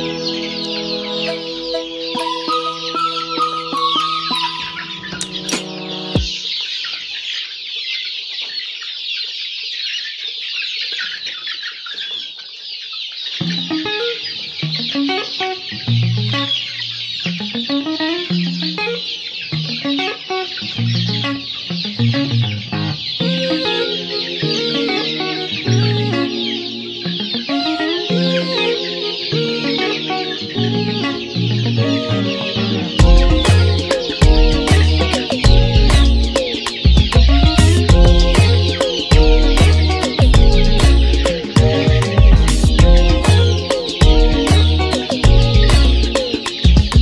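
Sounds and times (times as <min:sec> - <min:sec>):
guitar music: 0:00.0 - 0:06.5, 0:13.4 - 0:47.0.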